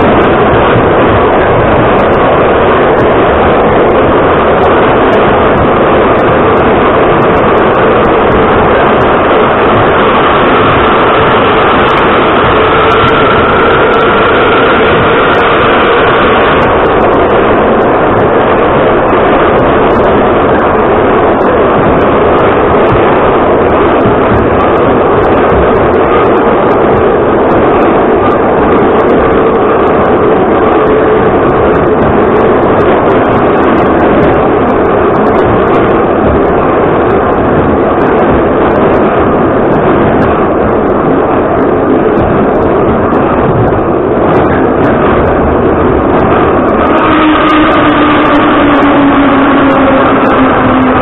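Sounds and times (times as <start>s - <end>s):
train wheels rumbling on rail: 0.0s - 51.0s
traction motor whine: 2.9s - 27.8s, 44.6s - 51.0s.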